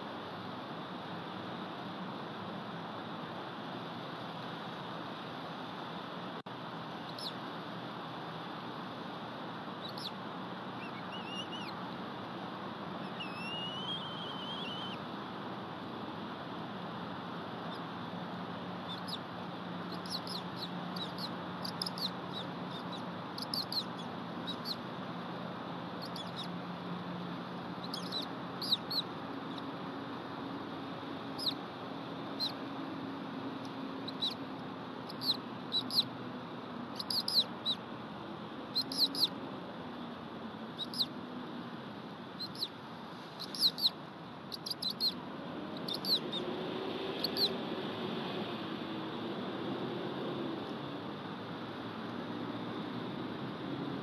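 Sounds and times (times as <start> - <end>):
background hiss: 0.0 - 54.0
eagles chirping: 9.8 - 11.8, 13.0 - 15.0, 19.9 - 24.8, 26.0 - 26.5, 27.8 - 29.7, 35.1 - 36.1, 37.0 - 37.8, 38.7 - 39.4, 40.8 - 41.1, 42.4 - 45.2, 45.8 - 46.5, 47.2 - 47.6.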